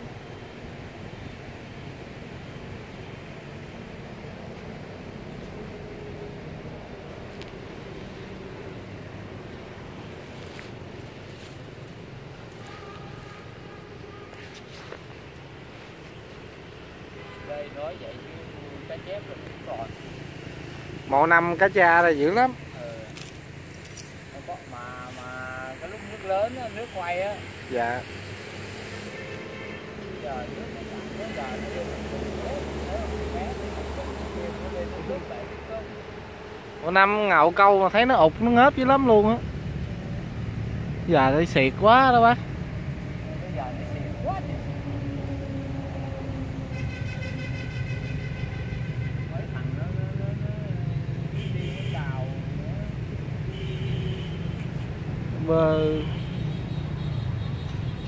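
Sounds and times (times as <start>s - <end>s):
metallic jingling and clinking: 23.2s - 24.3s.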